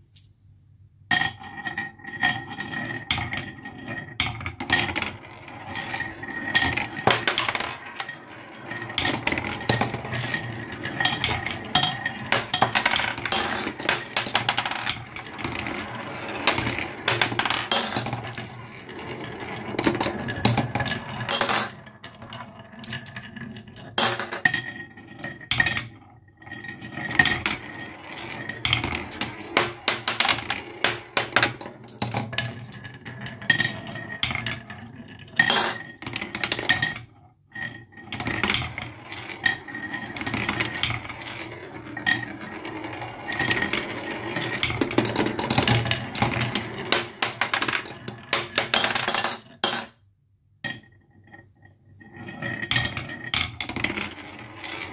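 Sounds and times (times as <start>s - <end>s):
marbles rolling down wooden run: 1.1s - 49.9s, 50.6s - 54.9s.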